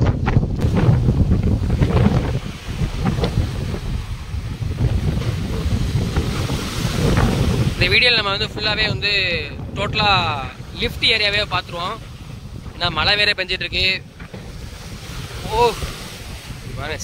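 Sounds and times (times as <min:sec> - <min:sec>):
sea waves breaking on rocks: 0:00.0 - 0:17.0
wind buffeting microphone: 0:00.0 - 0:17.0.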